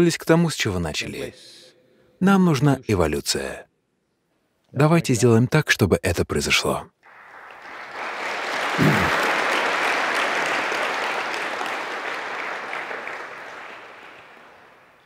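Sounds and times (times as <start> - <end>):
audience applauding: 7.0 - 15.0.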